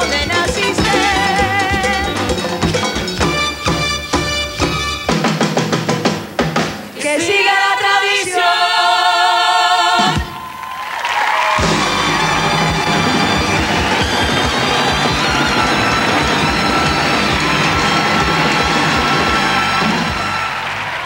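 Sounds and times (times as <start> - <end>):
latin band playing: 0.0 - 7.0, 11.6 - 21.0
audience cheering and applauding: 10.1 - 21.0.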